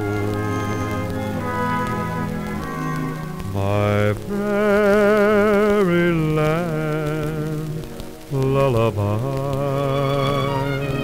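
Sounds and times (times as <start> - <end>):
orchestra playing held chords: 0.0 - 4.8, 9.7 - 11.0.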